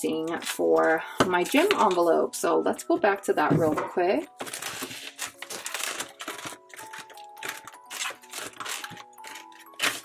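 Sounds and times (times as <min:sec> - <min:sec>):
soft background music: 0:00.0 - 0:10.0
plastic and paper rustling: 0:00.1 - 0:02.2, 0:04.3 - 0:10.0.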